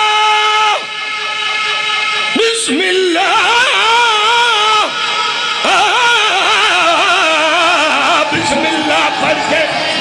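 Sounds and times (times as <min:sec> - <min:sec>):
man singing a long note: 0:00.0 - 0:10.0.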